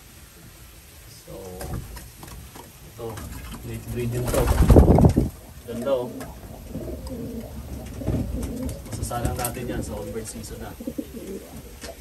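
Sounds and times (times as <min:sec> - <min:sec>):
pigeons cooing: 0:03.7 - 0:12.0.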